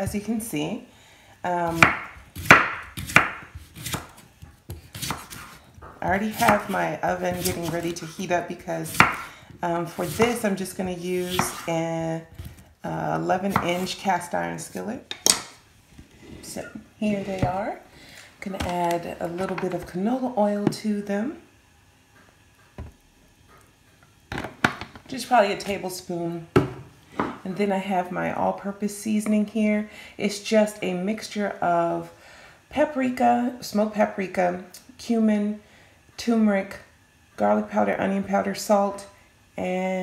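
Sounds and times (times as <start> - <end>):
knife chopping potato on board: 1.7 - 8.2, 8.8 - 9.3, 10.0 - 10.4, 11.2 - 11.7, 13.4 - 14.0.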